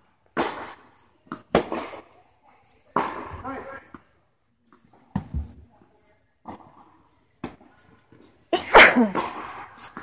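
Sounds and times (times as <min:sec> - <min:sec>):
person sneezing: 0:08.6 - 0:09.3.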